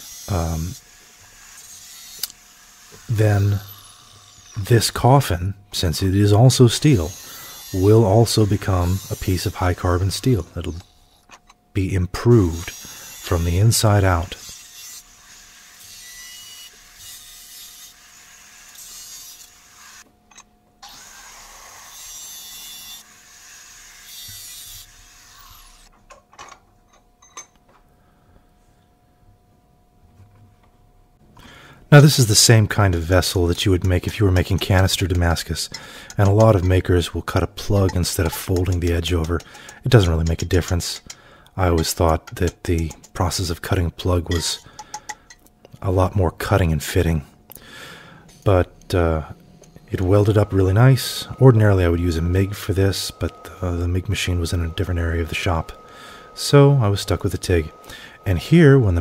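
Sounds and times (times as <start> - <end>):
angle grinder motor whine: 0.0 - 4.7, 49.6 - 59.0
grinder cutting metal hiss: 0.0 - 11.2, 12.2 - 20.1, 20.8 - 25.9, 31.5 - 45.4, 46.4 - 59.0
angle grinder running free: 32.7 - 45.1, 49.6 - 59.0.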